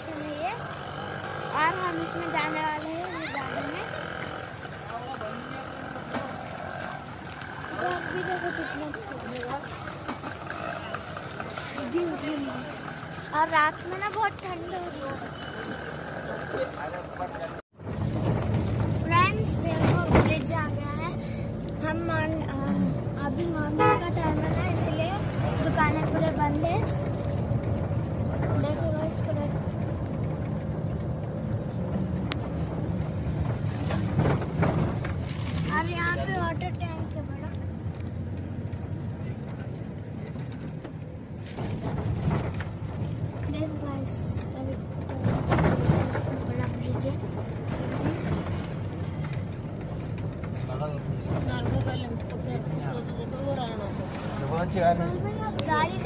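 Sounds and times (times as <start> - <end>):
voices: 0.0 - 17.6
car engine and road rumble: 0.0 - 56.0.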